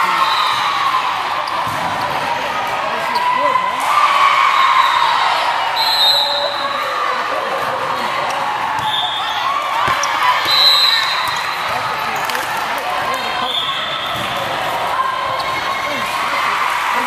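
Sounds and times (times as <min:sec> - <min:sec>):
voices of players and spectators: 0:00.0 - 0:17.0
shoe squeaks: 0:08.2 - 0:12.5.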